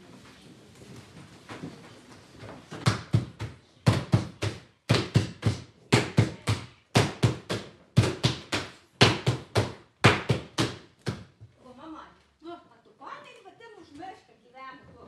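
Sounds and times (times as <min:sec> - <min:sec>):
wooden paddles beating cloth: 0:01.5 - 0:11.6.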